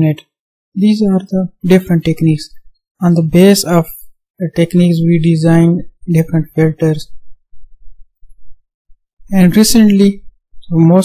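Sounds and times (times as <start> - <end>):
short low thumps: 5.8 - 10.8.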